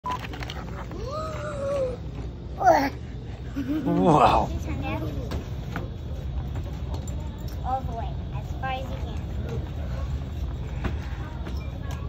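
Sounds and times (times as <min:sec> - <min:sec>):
low room hum: 0:00.1 - 0:12.0
child's drawn-out vocal sound: 0:01.0 - 0:03.1.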